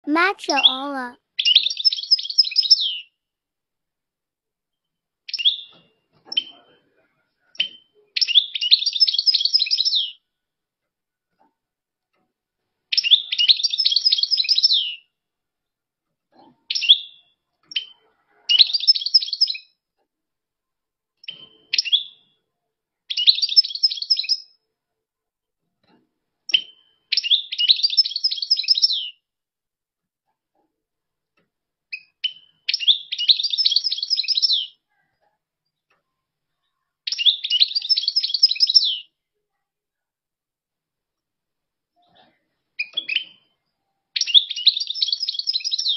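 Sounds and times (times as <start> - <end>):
goldfinch twittering song: 37.1 - 39.0.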